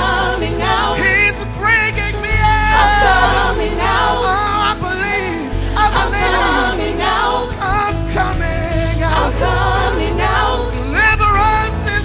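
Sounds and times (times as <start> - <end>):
group singing gospel: 0.0 - 12.0.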